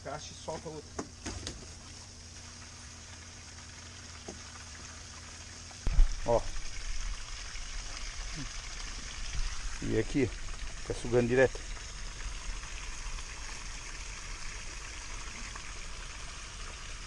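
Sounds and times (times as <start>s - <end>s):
low hum: 1.5s - 17.0s
faint steady hiss: 5.8s - 17.0s.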